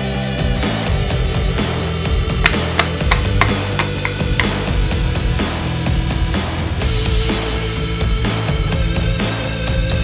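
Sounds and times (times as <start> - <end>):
hammer tapping metal: 2.4 - 4.7.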